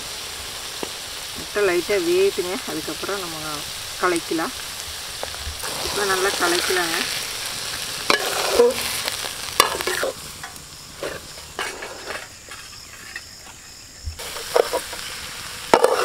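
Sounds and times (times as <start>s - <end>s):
light sizzle of frying: 0.0s - 16.0s
metal spoon scraping a metal pot: 8.1s - 8.8s.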